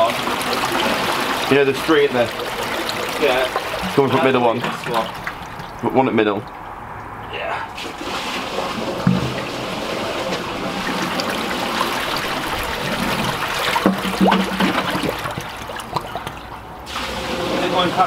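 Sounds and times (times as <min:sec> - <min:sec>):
water gushing from drain pipe: 0:00.0 - 0:18.0.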